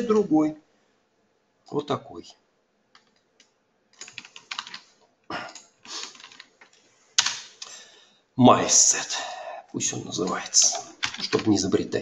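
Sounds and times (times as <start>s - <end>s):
computer keyboard typing: 3.0s - 4.9s, 5.5s - 6.5s, 10.2s - 11.5s.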